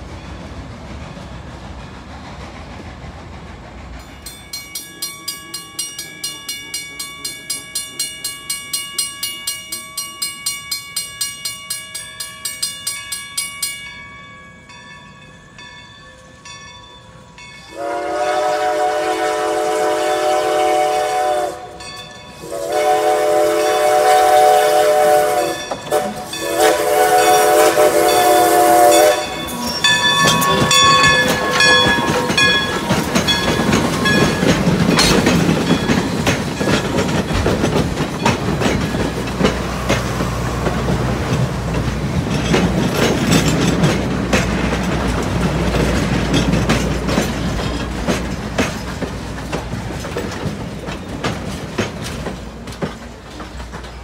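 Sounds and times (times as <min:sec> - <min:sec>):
low train rumble: 0:00.0 - 0:54.0
steam locomotive chime whistle: 0:04.0 - 0:41.4
crossing warning bell ringing: 0:04.0 - 0:51.9
train wheels clattering over rail joints: 0:21.0 - 0:54.0.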